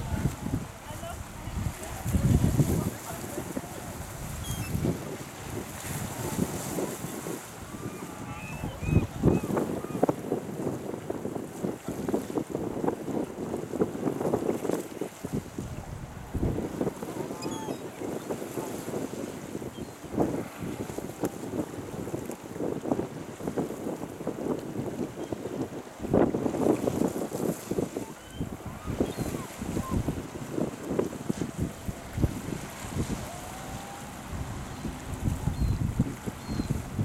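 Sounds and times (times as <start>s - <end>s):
waves splashing on rocks: 0.0s - 10.5s, 11.4s - 25.1s, 25.7s - 37.0s
wind buffeting microphone: 0.0s - 37.0s.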